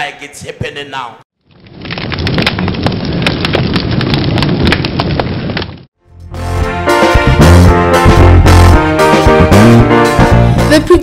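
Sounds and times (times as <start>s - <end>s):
low fire rumble: 1.4s - 5.9s
fire crackling and popping: 1.4s - 6.0s.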